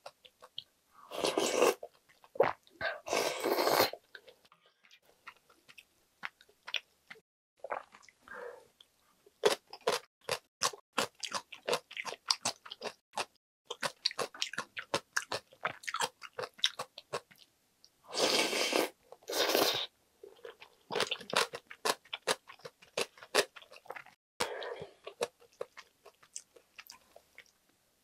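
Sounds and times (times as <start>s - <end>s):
slurping noodles and soup: 1.1s - 1.8s, 2.4s - 4.0s, 18.1s - 19.9s.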